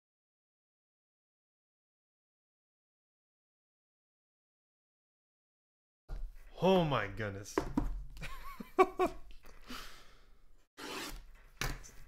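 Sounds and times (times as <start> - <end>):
man laughing: 8.2 - 9.3
breathy exhale: 9.6 - 10.4.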